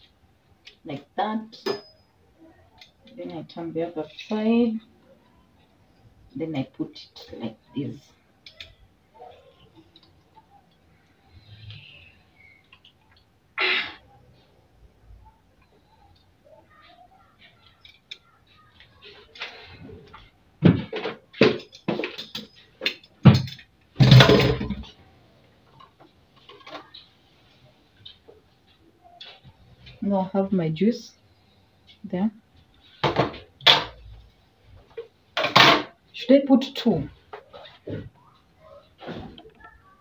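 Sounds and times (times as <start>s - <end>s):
utensils clattering in a sink: 1.6s - 2.0s, 20.7s - 24.9s.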